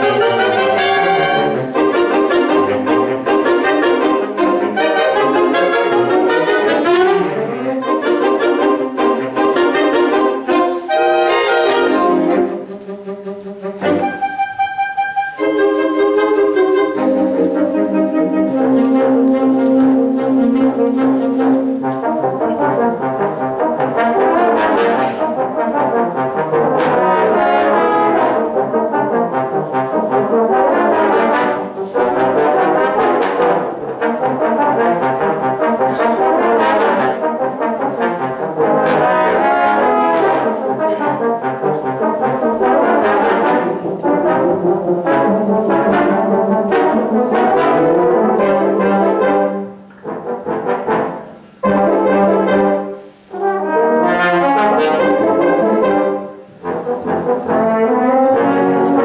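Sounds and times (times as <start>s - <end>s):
big band jazz brass playing: 0.0s - 59.0s.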